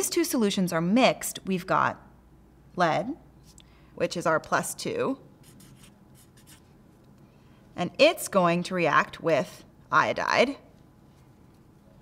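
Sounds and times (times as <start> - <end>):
marker scratching on a whiteboard: 5.4 - 6.8.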